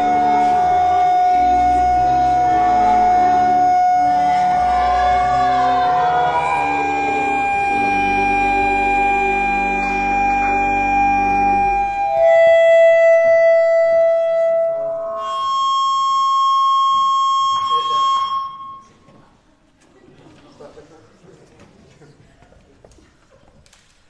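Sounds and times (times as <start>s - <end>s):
church organ chords: 0.0s - 18.8s.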